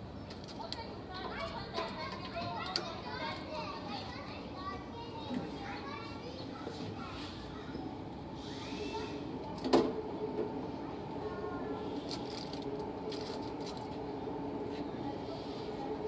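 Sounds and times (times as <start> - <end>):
children chattering and calling: 0.0 - 16.0.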